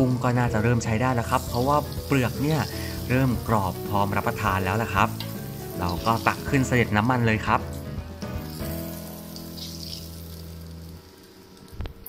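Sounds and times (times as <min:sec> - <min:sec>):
background music with held notes: 0:00.0 - 0:12.0
hot oil sizzling in a wok: 0:00.0 - 0:12.0
metal spatula in a wok: 0:05.1 - 0:06.5, 0:08.5 - 0:10.6.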